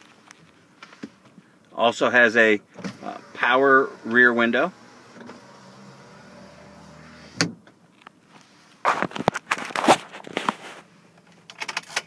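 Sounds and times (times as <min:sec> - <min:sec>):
window motor running: 0:02.8 - 0:07.5.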